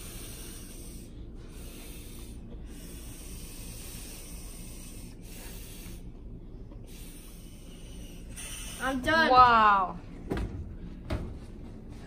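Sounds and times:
breath blown into balloon: 0:00.0 - 0:06.1, 0:06.8 - 0:09.0.

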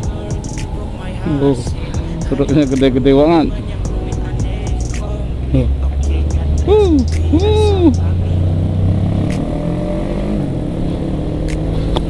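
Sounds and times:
heavy truck engine drone: 0:00.0 - 0:12.0.

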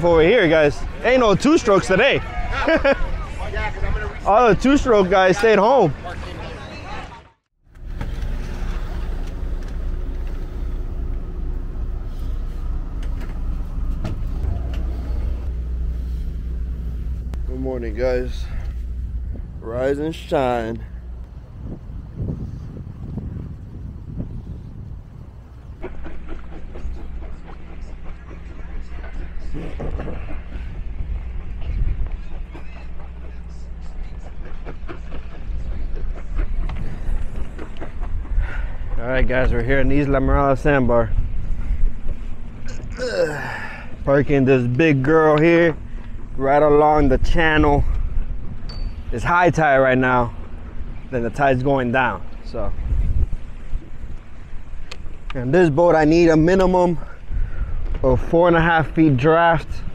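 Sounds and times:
boat engines idling: 0:00.0 - 0:22.6, 0:25.2 - 0:59.9
wind buffeting microphone: 0:08.3 - 0:43.0, 0:44.0 - 0:59.9.

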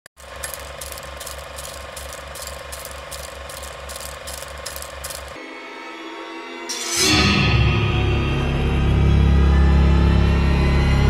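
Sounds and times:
mechanical ticking: 0:00.2 - 0:05.4.

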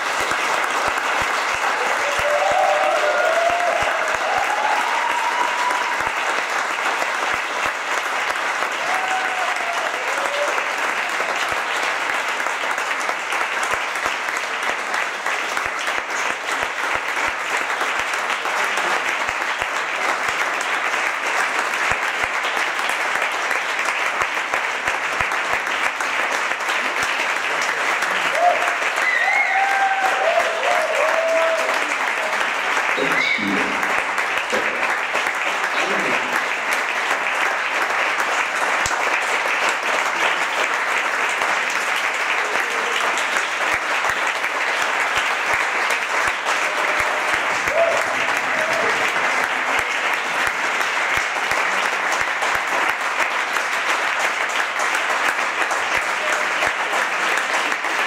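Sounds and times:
audience applauding: 0:00.0 - 0:58.0
voices calling out from crowd: 0:33.0 - 0:33.9.

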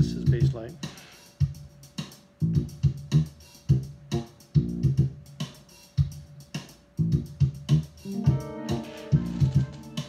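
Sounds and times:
syncopated funk bassline: 0:00.0 - 0:10.0.

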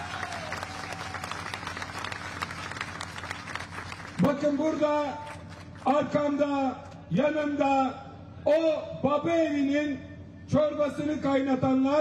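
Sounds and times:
crowd applauding: 0:00.0 - 0:05.7.

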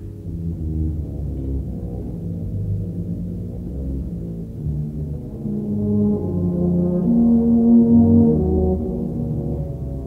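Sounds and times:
brass band playing low notes: 0:00.0 - 0:10.0.

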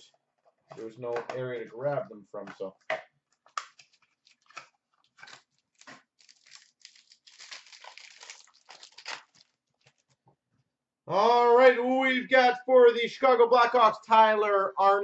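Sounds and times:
wrapper crinkling and tearing: 0:03.5 - 0:10.2.

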